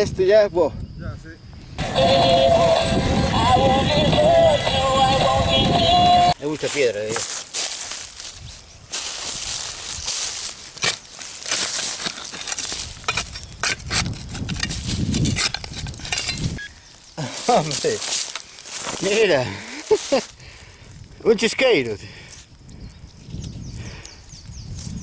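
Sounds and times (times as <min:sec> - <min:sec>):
digging tool chopping into soil: 0:10.7 - 0:15.9.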